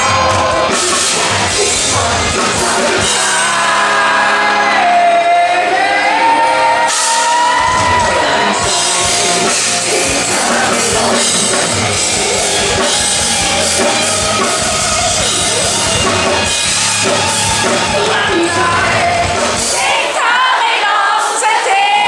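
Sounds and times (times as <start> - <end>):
man singing: 0.0 - 15.9, 17.5 - 19.8
live rock band: 0.0 - 22.0.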